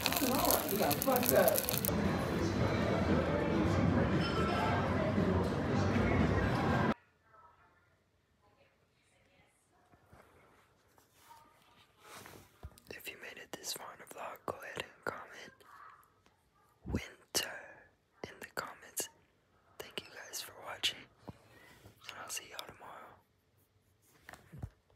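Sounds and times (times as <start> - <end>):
person whispering: 0.0 - 1.9, 12.8 - 15.7, 16.9 - 19.2, 19.8 - 21.2, 22.0 - 23.2.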